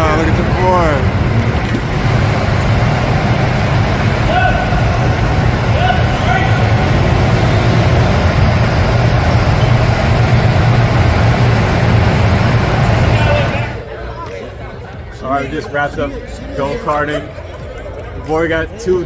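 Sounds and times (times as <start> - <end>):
go-kart engines droning: 0.0 - 13.9.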